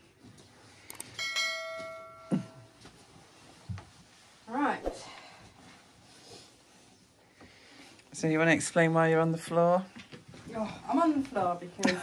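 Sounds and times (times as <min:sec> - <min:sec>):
metal object ringing: 0:01.2 - 0:02.7.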